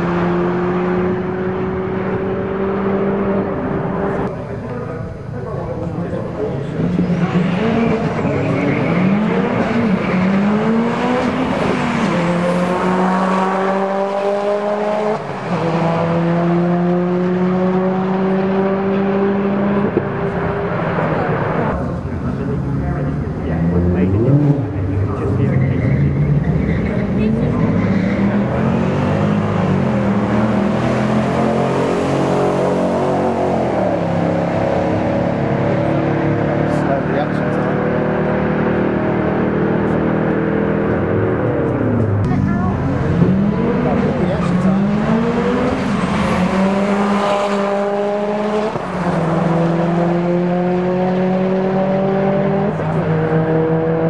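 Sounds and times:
cars accelerating through gears: 0.0s - 4.7s, 5.9s - 54.0s
drag racing engines revving: 0.0s - 54.0s.

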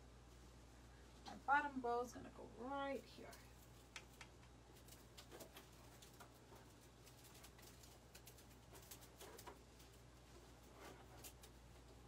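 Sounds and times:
faint room hum: 0.0s - 12.0s
soft clicks and rustles: 3.0s - 12.0s.

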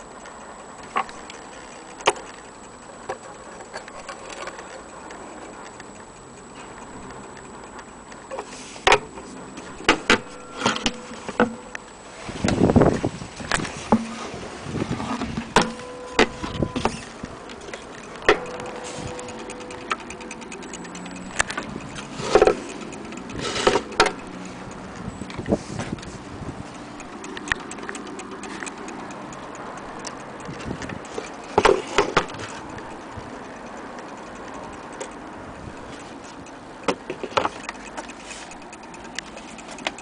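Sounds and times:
clock being handled with clicks: 0.0s - 14.2s, 15.1s - 40.0s
faint steady ringing tone: 0.0s - 40.0s.

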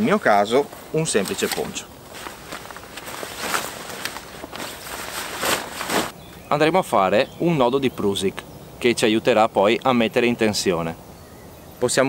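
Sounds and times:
poncho rustling: 0.0s - 6.2s
footsteps on forest floor: 0.6s - 6.2s.

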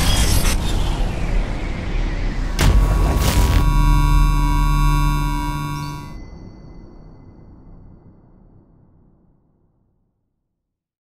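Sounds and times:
synthesized chord: 2.6s - 6.2s.

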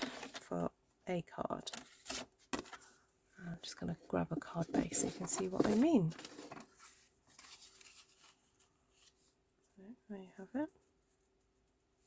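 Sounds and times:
cardstock rustling and scuffing: 1.7s - 3.0s, 4.4s - 9.2s.

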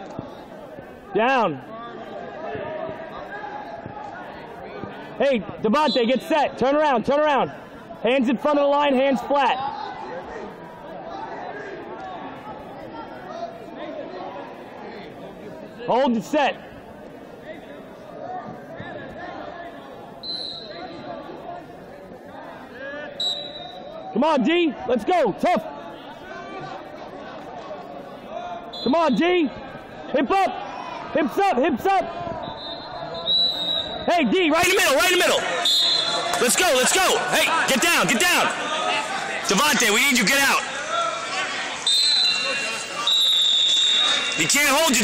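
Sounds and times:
voices: 0.0s - 45.0s
referee's whistle blasts: 5.8s - 6.4s, 20.2s - 20.9s, 23.2s - 23.9s, 28.7s - 29.3s, 32.4s - 34.1s, 35.5s - 36.4s, 41.8s - 45.0s.

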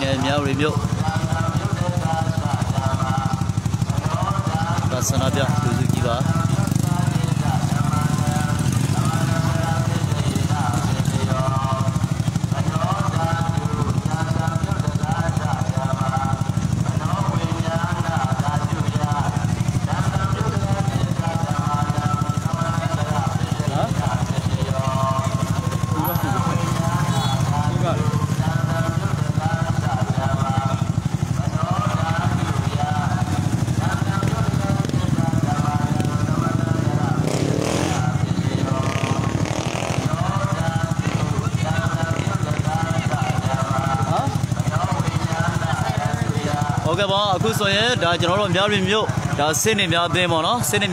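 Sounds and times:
crowd calling and talking: 0.0s - 50.9s
motorcycle engine idling: 0.0s - 50.9s.

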